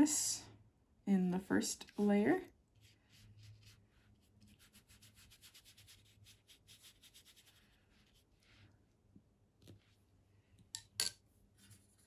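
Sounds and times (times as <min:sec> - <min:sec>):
paintbrush strokes on paper: 0:01.7 - 0:08.8.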